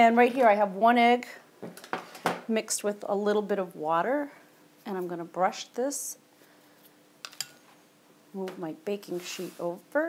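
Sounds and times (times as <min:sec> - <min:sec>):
faint steady hum: 0:00.0 - 0:10.0
utensils clicking on countertop: 0:07.2 - 0:07.6.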